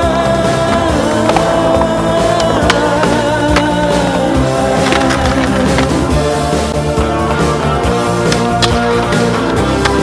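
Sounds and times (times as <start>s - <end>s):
loud music track: 0.0s - 10.0s
skateboard wheels rolling on concrete: 0.0s - 10.0s
skateboard clacks: 0.4s - 6.2s, 8.2s - 10.0s.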